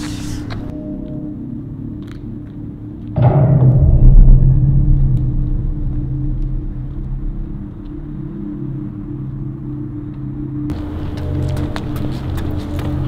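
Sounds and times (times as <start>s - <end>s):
steady low hum: 0.0s - 13.0s
deep low rumble: 3.1s - 11.8s.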